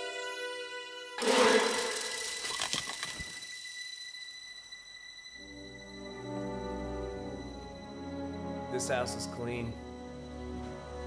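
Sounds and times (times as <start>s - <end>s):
sustained orchestral chord: 4.0s - 11.0s.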